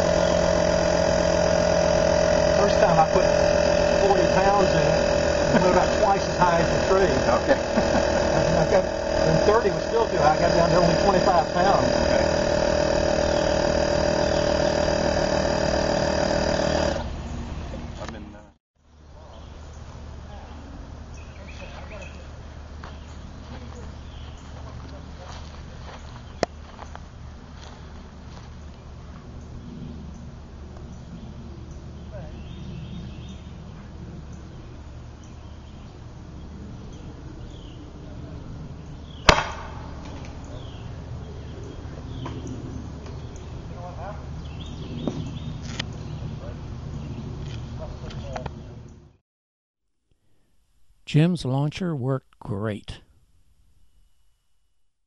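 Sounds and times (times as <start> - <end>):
air compressor whining: 0.0 - 18.6, 32.2 - 48.5
compressed air pop: 39.2 - 40.4.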